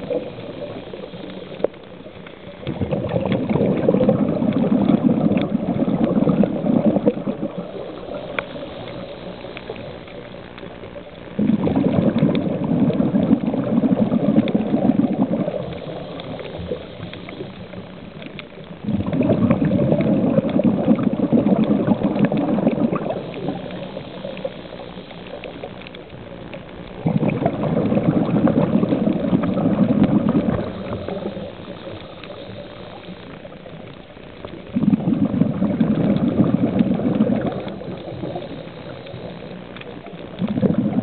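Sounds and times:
small clicks: 0.0s - 13.4s, 14.2s - 34.8s, 35.9s - 41.0s
exhaled breath bubbling underwater: 0.0s - 41.0s
faint steady drone: 0.0s - 41.0s.

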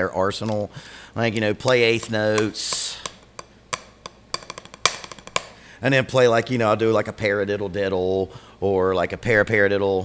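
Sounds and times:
drumsticks on practice pad: 1.6s - 5.6s.

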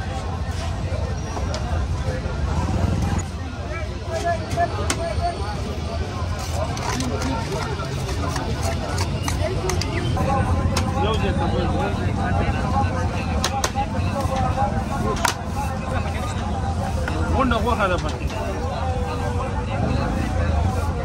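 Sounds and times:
low rumble of street traffic: 0.0s - 21.0s
people talking: 0.0s - 21.0s.

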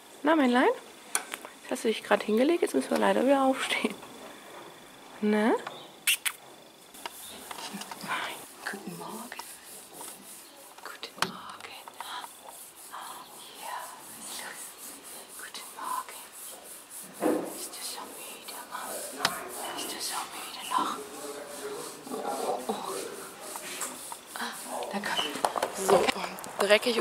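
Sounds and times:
woman whispering: 7.6s - 9.4s, 10.8s - 12.3s, 12.9s - 14.6s, 15.3s - 16.4s, 17.7s - 19.0s, 19.7s - 21.0s.

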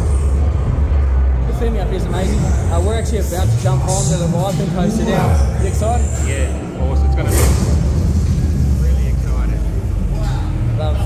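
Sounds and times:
faint voices: 0.0s - 11.0s
loud deep rumble: 0.0s - 11.0s.

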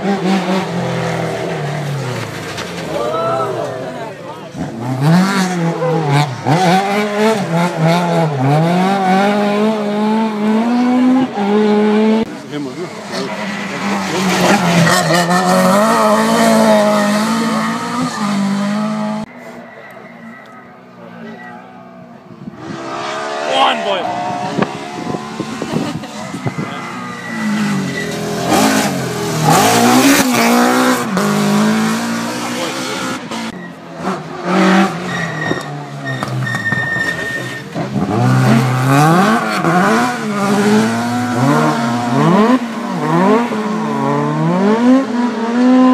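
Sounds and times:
rally car engines revving: 0.0s - 45.9s.

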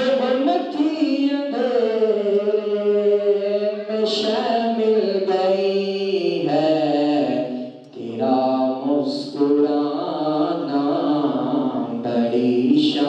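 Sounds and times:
man chanting into a microphone: 0.0s - 13.0s.

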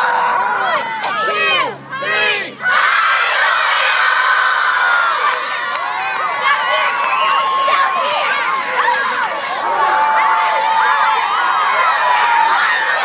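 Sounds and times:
children shouting together: 0.0s - 13.0s
crowd cheering and yelling: 0.0s - 13.0s.

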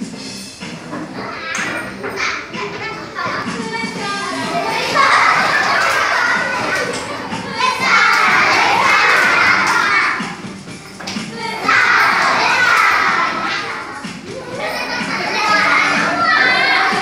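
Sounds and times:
children shouting and cheering: 0.8s - 17.0s.

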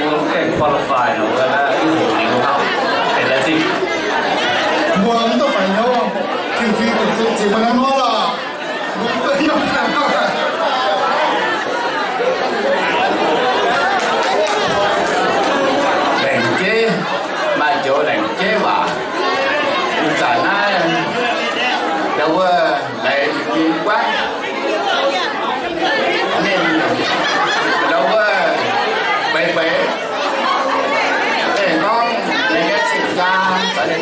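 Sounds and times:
man speaking into a microphone: 0.0s - 3.8s, 4.9s - 8.4s, 9.0s - 10.6s, 16.2s - 19.0s, 19.9s - 24.3s, 26.3s - 27.2s, 27.8s - 30.0s, 31.5s - 34.0s
crowd chattering: 0.0s - 34.0s.

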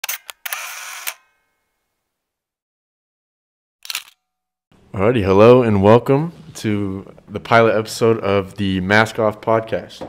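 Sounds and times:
camera shutter clicks: 0.0s - 1.2s, 3.8s - 4.2s.

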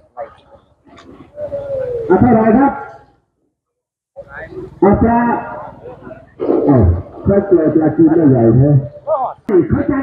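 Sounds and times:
man speaking: 1.5s - 3.0s, 4.2s - 10.0s.

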